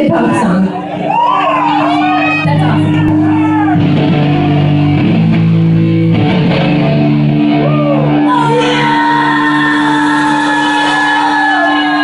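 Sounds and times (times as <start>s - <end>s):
punk rock band playing: 0.9s - 12.0s.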